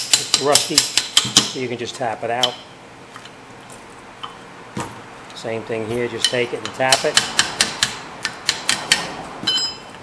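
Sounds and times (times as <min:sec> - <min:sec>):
wrench tapping on metal: 0:00.0 - 0:01.6, 0:06.2 - 0:09.8
ringing metal clink: 0:09.5 - 0:10.0.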